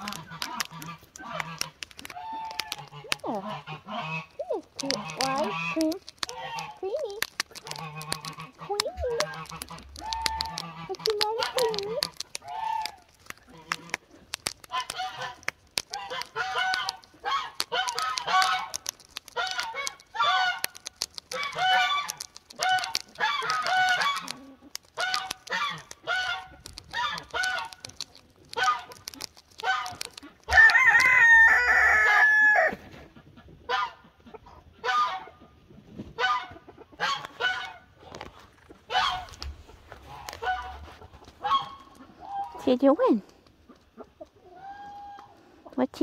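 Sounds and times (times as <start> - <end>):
duck pecking at rubber clog: 0.0 - 32.4, 36.2 - 45.3.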